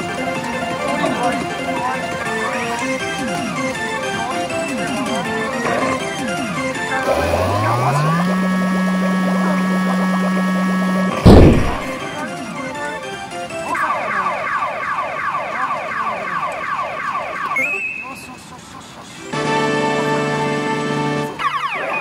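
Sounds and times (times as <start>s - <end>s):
stepped rising electronic tone: 7.3s - 12.0s
loud crash effect: 11.1s - 12.0s.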